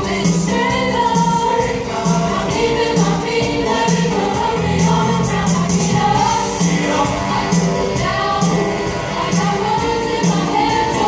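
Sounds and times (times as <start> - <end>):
accompaniment with steady beat: 0.0 - 11.0
choir singing in harmony: 0.0 - 11.0.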